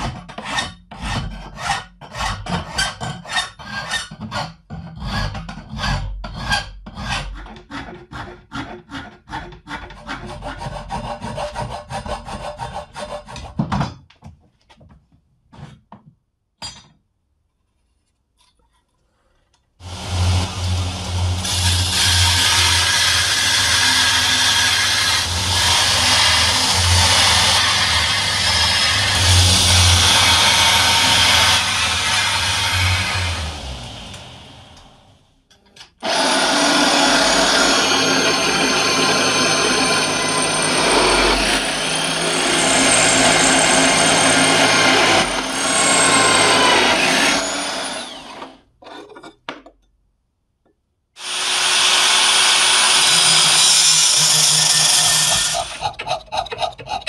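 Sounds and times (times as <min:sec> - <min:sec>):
drill press boring steel: 0:19.8 - 0:35.1, 0:36.0 - 0:48.6, 0:51.2 - 0:57.0
power tool grinding steel: 0:19.8 - 0:35.1, 0:36.0 - 0:48.6, 0:51.2 - 0:57.0.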